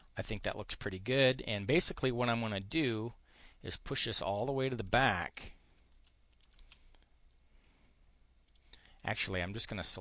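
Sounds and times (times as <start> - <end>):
low room hum: 0.0 - 10.0
computer mouse clicks: 5.9 - 7.1.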